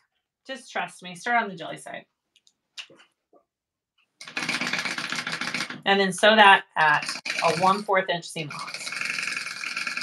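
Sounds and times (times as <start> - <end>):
woman speaking: 0.5 - 2.0, 5.8 - 9.0
sewing machine running fast: 4.2 - 5.8, 6.9 - 7.9, 8.5 - 10.0.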